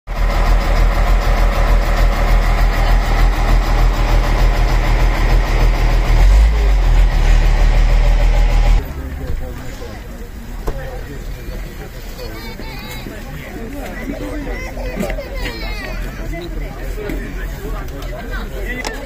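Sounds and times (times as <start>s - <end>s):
truck engine idling: 0.1s - 12.1s.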